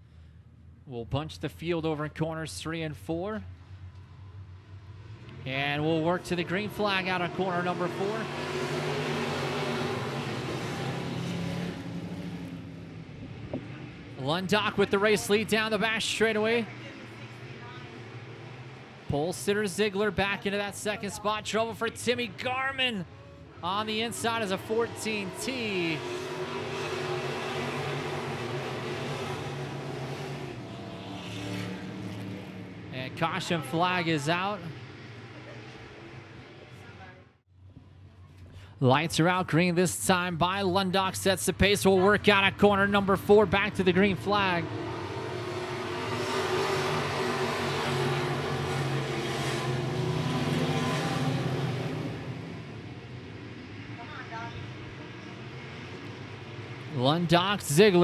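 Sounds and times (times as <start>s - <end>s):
race car engines droning: 0.0s - 58.0s.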